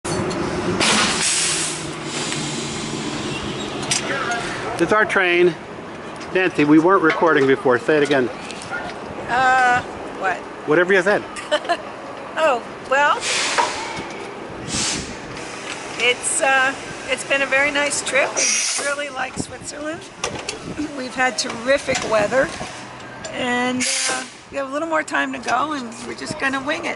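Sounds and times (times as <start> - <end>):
locomotive humming: 0.0 - 26.9
air hissing: 0.8 - 3.4, 13.2 - 17.5, 18.4 - 19.0, 23.8 - 24.4.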